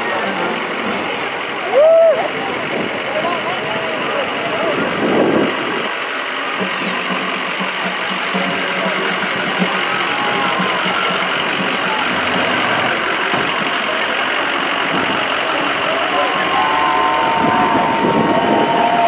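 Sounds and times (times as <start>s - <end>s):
indistinct crowd voices: 0.0s - 19.0s
truck engine running slowly: 0.0s - 19.0s.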